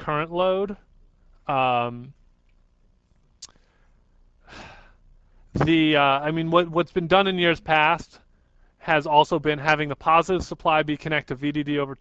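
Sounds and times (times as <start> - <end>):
man breathing: 3.5 - 5.5.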